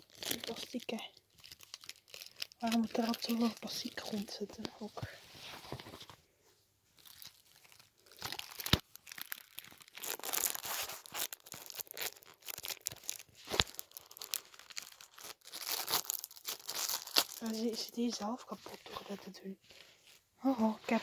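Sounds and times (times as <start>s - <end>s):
plastic wrapping tearing and crinkling: 0.0s - 4.7s, 7.0s - 19.2s.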